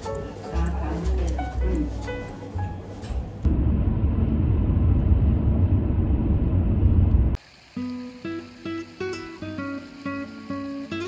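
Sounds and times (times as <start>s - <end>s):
loud low rumbling noise: 3.4s - 7.4s
plucked acoustic guitar music: 7.8s - 11.0s.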